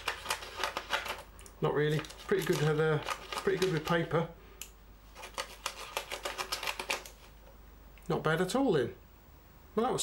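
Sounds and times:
scissors snipping paper: 0:01.9 - 0:04.0.

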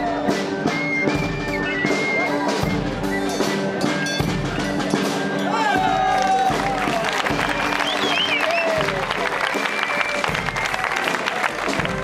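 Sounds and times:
live dance music: 0:00.0 - 0:12.0
audience applauding: 0:05.8 - 0:12.0.

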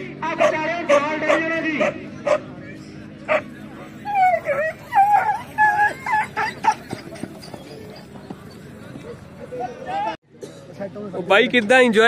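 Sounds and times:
dogs whining and yelping: 0:03.3 - 0:08.8.

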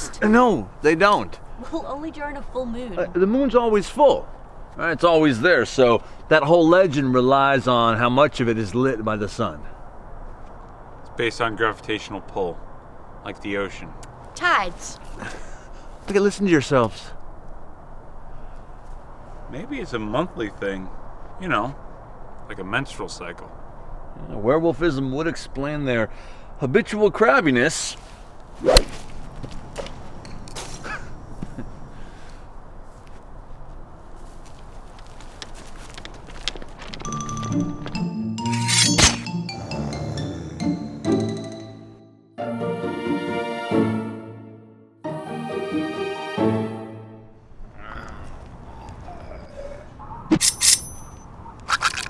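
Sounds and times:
club whooshing through air: 0:28.6 - 0:29.1
hatchet blade striking metal: 0:38.4 - 0:39.4, 0:50.3 - 0:51.2.

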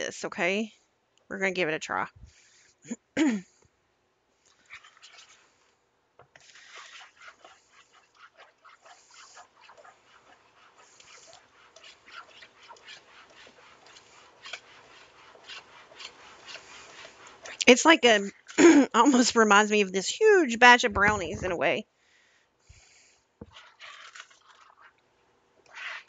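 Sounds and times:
person clearing throat: 0:02.9 - 0:03.6, 0:18.6 - 0:19.0
metal spoon scraping stiff dough: 0:04.5 - 0:05.7, 0:06.4 - 0:18.6, 0:23.4 - 0:25.0, 0:25.7 - 0:26.0.

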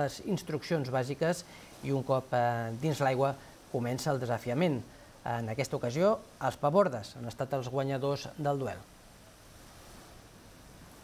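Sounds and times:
wind: 0:00.0 - 0:11.0
sea hiss: 0:01.4 - 0:02.0.

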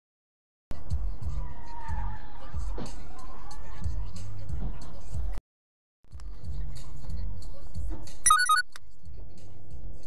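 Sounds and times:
short electronic chime: 0:08.3 - 0:08.7.

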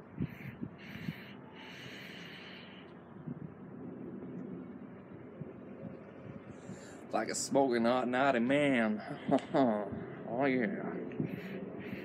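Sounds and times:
breathy exhale: 0:00.2 - 0:02.9, 0:11.2 - 0:12.0
man inhaling smoke: 0:00.2 - 0:03.0, 0:06.5 - 0:07.1, 0:11.2 - 0:12.0.

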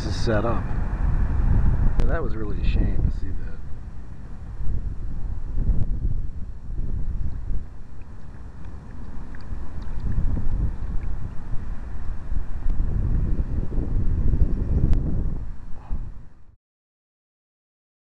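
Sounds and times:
wind buffeting microphone: 0:00.0 - 0:16.6
faint ticks: 0:07.9 - 0:11.5.

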